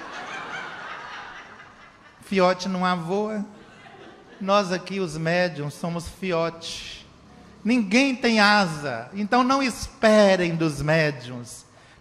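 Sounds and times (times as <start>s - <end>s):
audience laughing: 0.0s - 2.3s, 3.5s - 4.6s.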